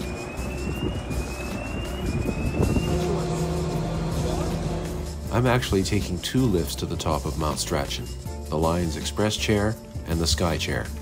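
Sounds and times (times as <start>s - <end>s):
rising whistle-like tones: 0.0s - 5.0s
machinery humming: 0.0s - 5.8s.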